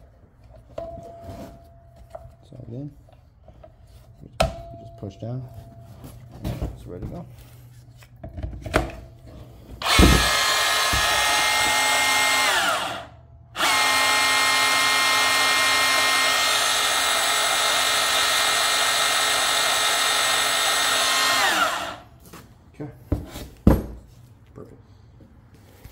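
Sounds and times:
band saw motor whining: 9.8s - 22.1s.

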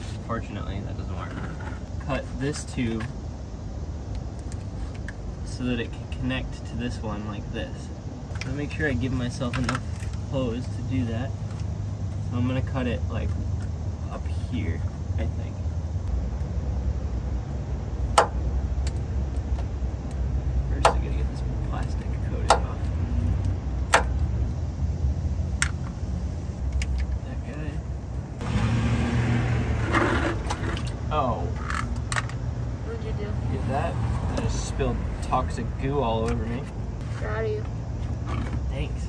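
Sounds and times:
steady low rumble: 0.0s - 39.0s
car passing: 28.4s - 31.4s, 32.5s - 36.6s.

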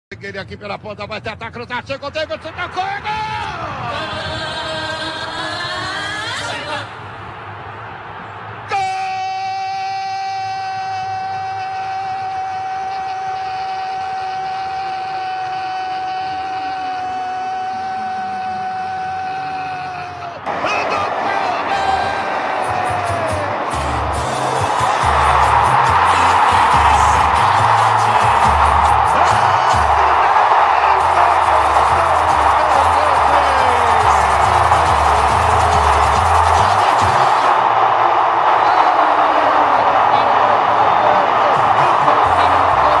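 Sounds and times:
stadium crowd roaring: 2.1s - 43.0s
radio narrator's held shout: 18.0s - 43.0s
heavy low beat: 23.2s - 37.4s.

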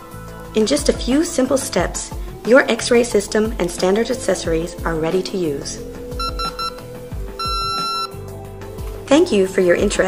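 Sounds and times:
soft background music: 0.0s - 10.0s
high electronic beep: 6.2s - 6.8s, 7.4s - 8.2s.

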